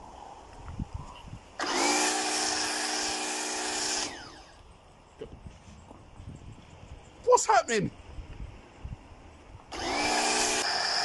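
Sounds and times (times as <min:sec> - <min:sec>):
pressure washer motor hum: 0:01.6 - 0:04.6, 0:09.7 - 0:11.0.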